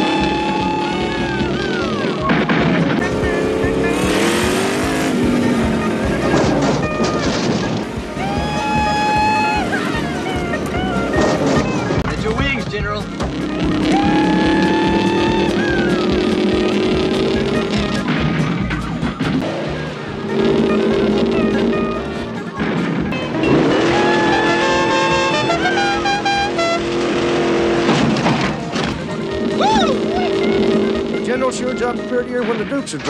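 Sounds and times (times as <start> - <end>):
background music: 0.0 - 33.0
car engine revving: 0.0 - 33.0.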